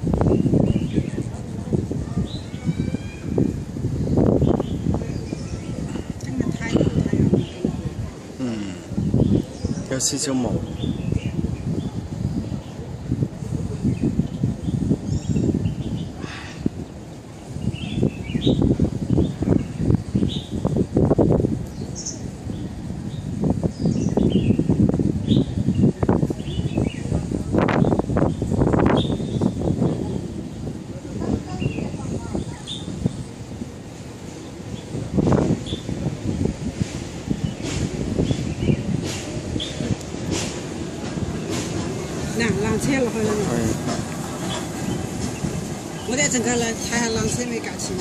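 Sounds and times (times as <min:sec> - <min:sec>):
gusty low rumble: 0:00.0 - 0:48.0
wind buffeting microphone: 0:00.0 - 0:48.0
small birds chirping: 0:02.0 - 0:13.1, 0:13.7 - 0:20.9, 0:21.6 - 0:30.7, 0:31.3 - 0:48.0.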